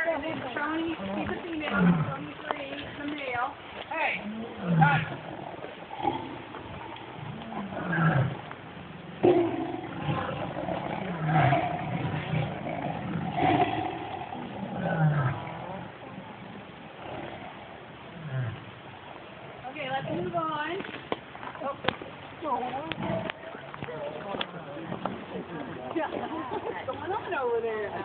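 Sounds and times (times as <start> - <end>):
tigers roaring: 1.0 - 2.3, 4.2 - 20.4, 22.9 - 25.9.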